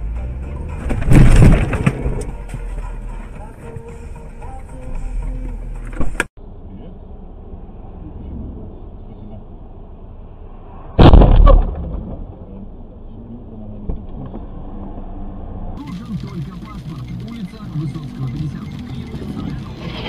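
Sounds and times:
car collision bang: 0.8 - 2.2, 11.0 - 12.5.

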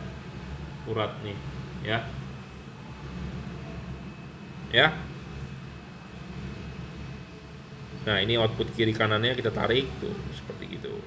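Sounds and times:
faint high whine: 0.0 - 11.0
steady low hum: 0.0 - 11.0.

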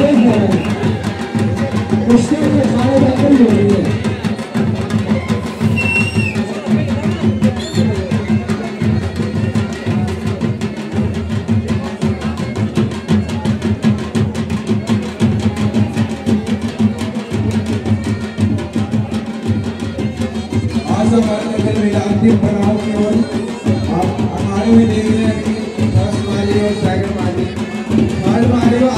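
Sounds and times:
crowd voices: 0.0 - 28.9
drums beaten in fast rhythm: 0.0 - 28.9.

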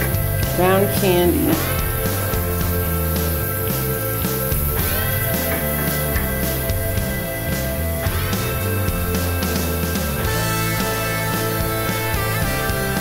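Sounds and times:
bass line: 0.0 - 13.0
rock music with guitar chords: 0.0 - 13.0.

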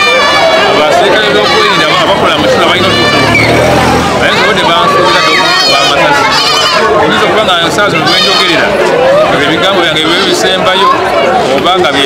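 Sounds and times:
street chatter: 0.0 - 12.0.

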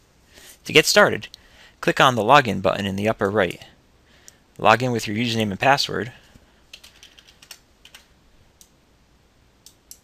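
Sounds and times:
keyboard typing: 6.7 - 8.1.

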